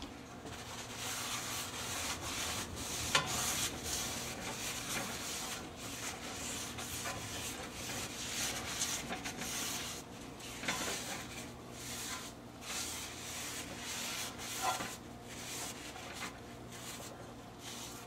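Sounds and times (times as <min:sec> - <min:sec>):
paper towel scrubbing a pan: 0:00.5 - 0:18.0.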